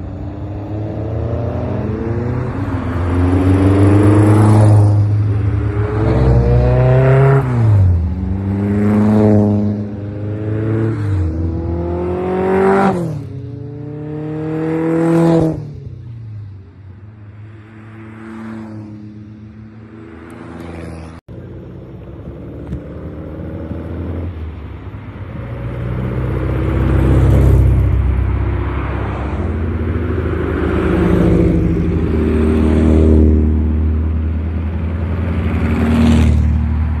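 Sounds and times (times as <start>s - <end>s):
sports cars driving past: 0.0s - 37.0s
traffic engine rumble: 0.0s - 37.0s.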